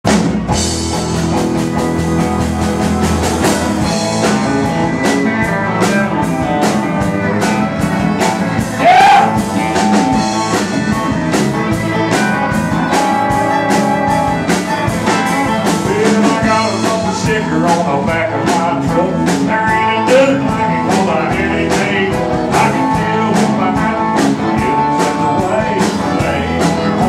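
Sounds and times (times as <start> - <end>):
country band playing: 0.0 - 27.0.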